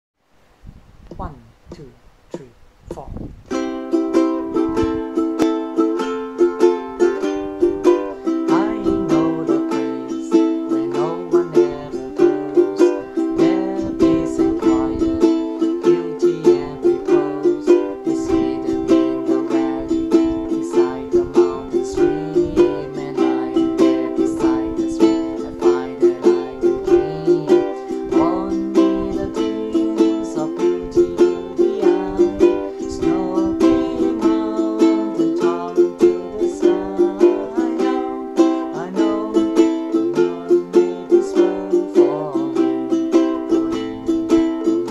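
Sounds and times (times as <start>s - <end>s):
ukulele strumming: 2.3s - 44.9s.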